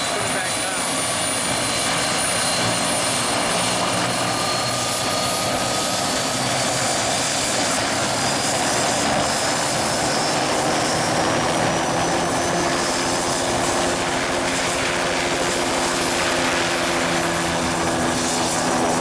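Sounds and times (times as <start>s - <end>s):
helicopter rotor and engine running: 0.0s - 19.0s
high turbine whine: 0.0s - 19.0s.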